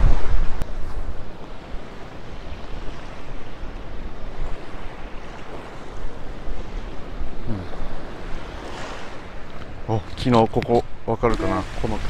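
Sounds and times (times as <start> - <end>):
small waves washing on sand: 0.0 - 12.0
wind on microphone: 0.0 - 12.0.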